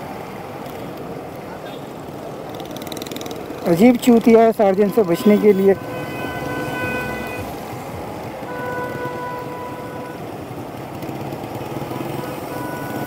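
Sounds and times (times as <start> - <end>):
city traffic noise: 0.0 - 13.0.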